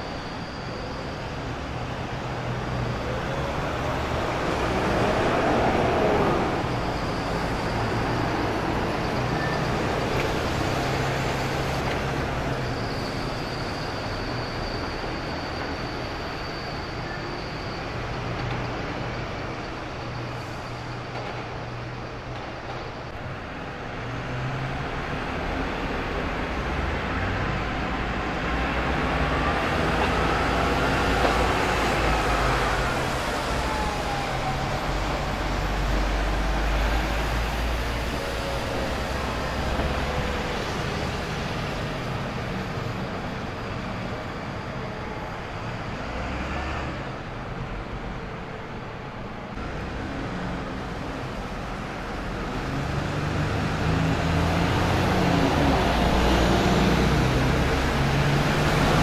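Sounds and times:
diesel bus engine: 0:00.0 - 0:59.0
passing vehicle whine: 0:00.0 - 0:59.0.

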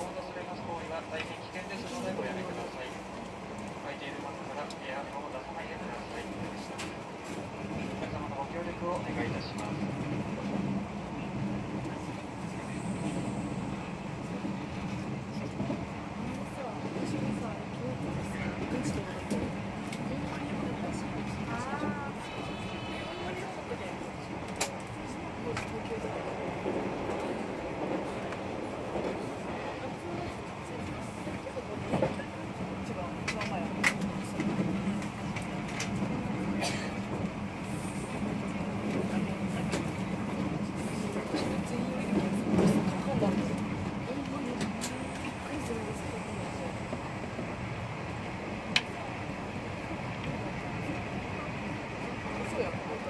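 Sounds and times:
train wheels rumbling on rail: 0:00.0 - 0:53.0
voices in train car: 0:00.0 - 0:53.0.

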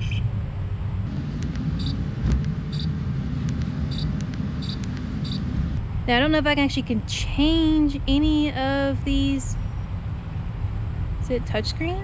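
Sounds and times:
low outdoor rumble: 0:00.2 - 0:12.0.

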